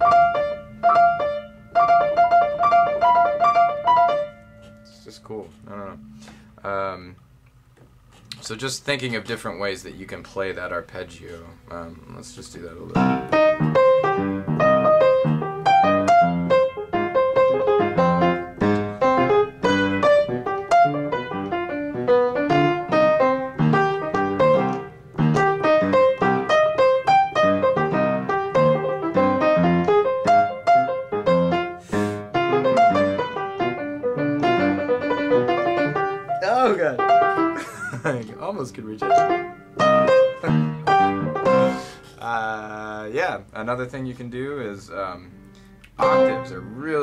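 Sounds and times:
solo piano arpeggios: 0:00.0 - 0:04.6, 0:12.9 - 0:37.6, 0:39.0 - 0:41.9.

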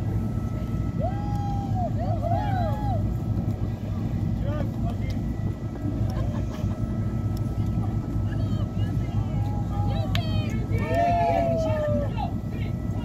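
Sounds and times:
boat engines idling: 0:00.0 - 0:13.0.

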